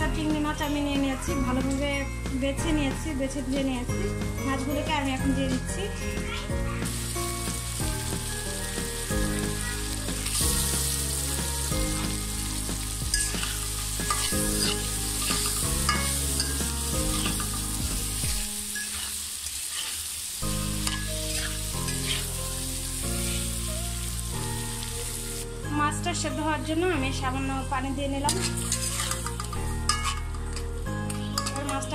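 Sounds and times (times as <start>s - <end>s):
shrimp sizzling in hot oil: 6.3s - 25.6s, 28.2s - 31.9s
metal spatula scraping pan: 13.1s - 20.2s, 20.8s - 22.4s, 28.3s - 31.9s.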